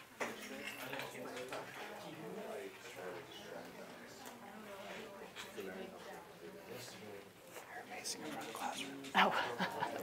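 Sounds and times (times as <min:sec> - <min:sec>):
people talking: 0:00.3 - 0:10.0.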